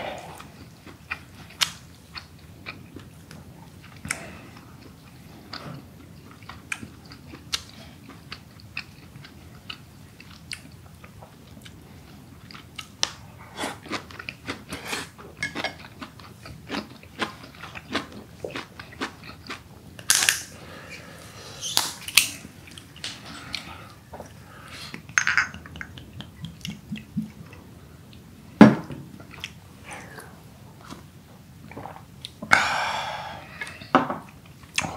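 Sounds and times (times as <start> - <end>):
chewing with wet mouth clicks: 4.8 - 11.8.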